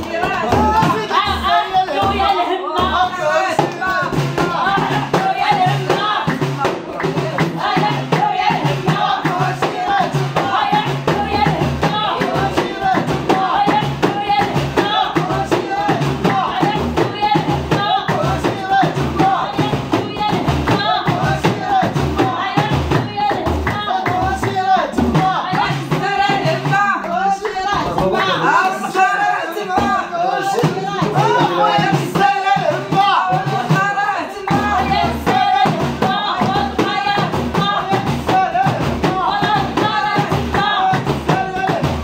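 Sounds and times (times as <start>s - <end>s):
frame drums beating: 0.0s - 42.0s
group singing: 0.0s - 42.0s
people clapping: 0.0s - 42.0s.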